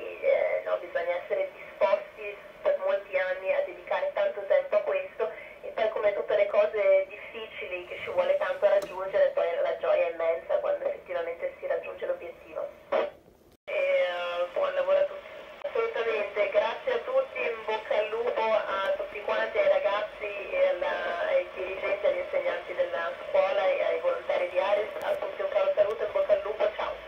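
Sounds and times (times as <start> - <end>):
voice over radio speaker: 6.4 - 13.1, 13.7 - 27.0.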